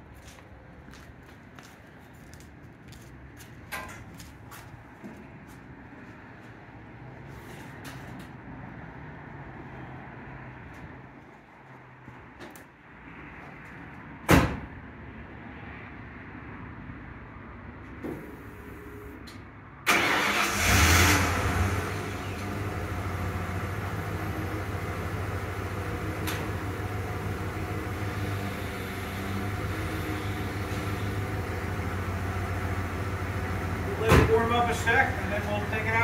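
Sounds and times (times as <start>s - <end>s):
truck door slamming shut: 14.3s - 14.7s.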